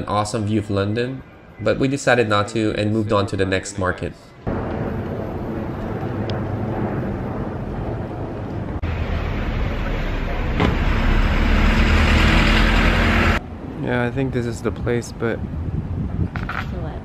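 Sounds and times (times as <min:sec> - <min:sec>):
vehicles driving past: 0:04.3 - 0:16.0
truck passing close by: 0:04.5 - 0:13.4.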